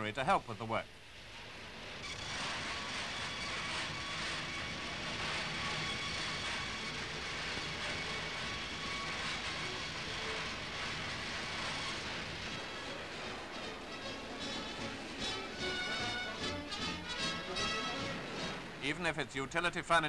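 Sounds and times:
woodworking machinery running: 2.1 - 17.5.

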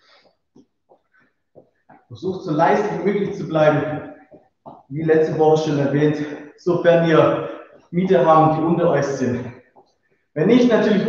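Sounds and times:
person breathing: 7.3 - 7.9.

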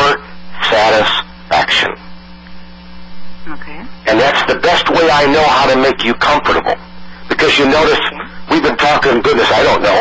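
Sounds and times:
electrical hum on telephone line: 0.0 - 10.0.

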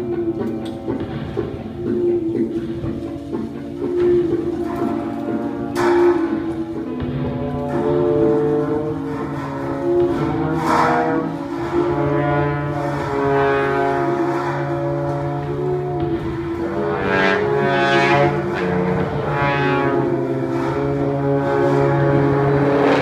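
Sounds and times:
low steady drone: 0.0 - 23.0
sustained higher tones: 0.0 - 23.0.

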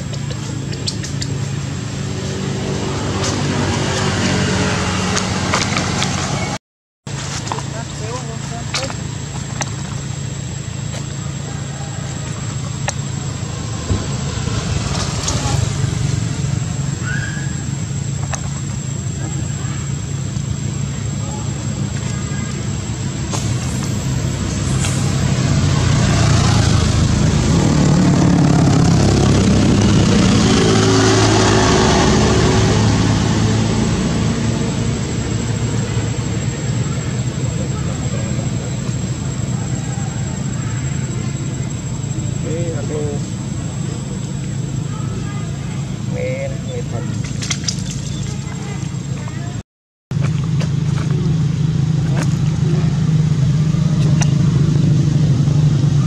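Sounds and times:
vehicle engine running: 0.0 - 56.0
indistinct voices: 7.5 - 49.6.

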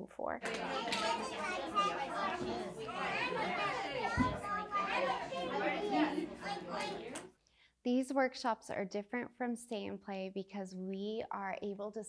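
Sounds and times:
children and adults chattering: 0.4 - 7.3.

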